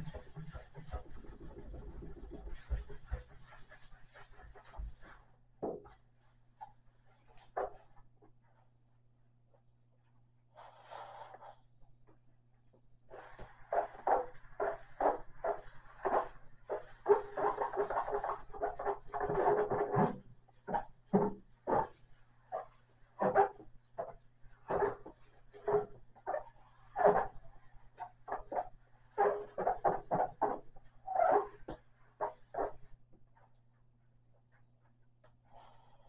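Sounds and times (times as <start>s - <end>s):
wet sponge scrubbing stove top: 0.0s - 5.3s, 13.1s - 33.0s.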